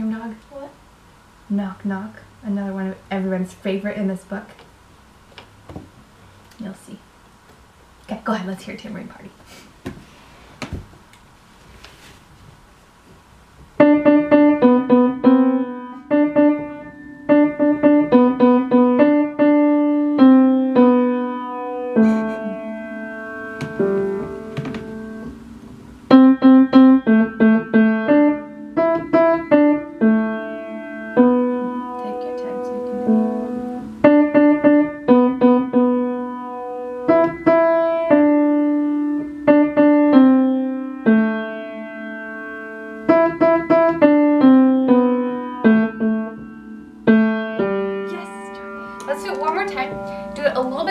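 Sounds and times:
child playing piano: 13.8 - 50.9.

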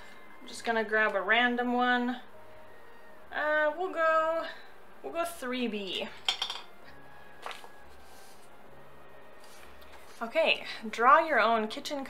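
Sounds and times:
pencils clinking together: 6.2 - 6.7.

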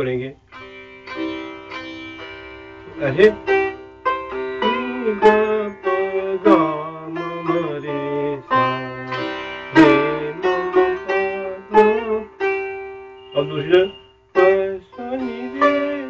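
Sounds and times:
ringing sitar drone: 0.0 - 16.0
sitar plucked strokes with pitch bends: 0.0 - 16.0.

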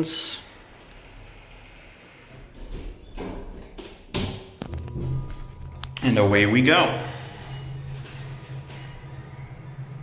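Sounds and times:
elevator doors sliding shut: 0.5 - 10.0.

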